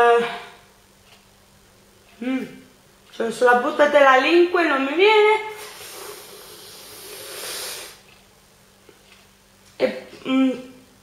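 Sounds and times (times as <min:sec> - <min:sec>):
hissing breath through teeth: 0:05.6 - 0:08.1.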